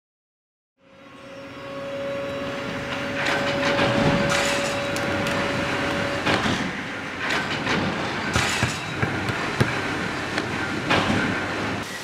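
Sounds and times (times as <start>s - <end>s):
rumbling mechanical noise: 1.7s - 12.0s
steady hum: 1.7s - 12.0s.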